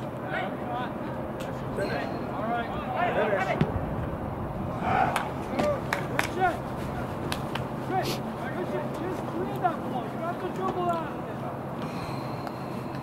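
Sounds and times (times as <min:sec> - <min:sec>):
players shouting: 0:00.2 - 0:03.8, 0:04.4 - 0:11.5.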